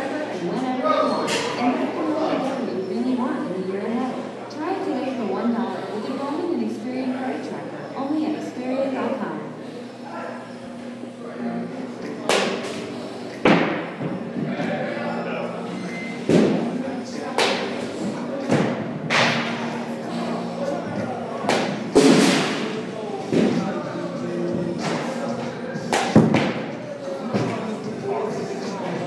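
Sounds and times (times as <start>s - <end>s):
voices: 0.0s - 29.0s
baseballs being hit: 12.2s - 13.9s, 16.3s - 16.8s, 17.4s - 19.6s, 21.4s - 22.7s, 25.9s - 26.7s.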